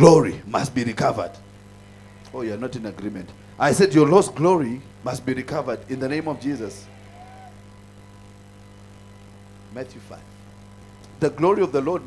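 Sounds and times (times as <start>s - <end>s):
low electrical hum: 0.0s - 12.0s
faint held tones: 4.9s - 12.0s.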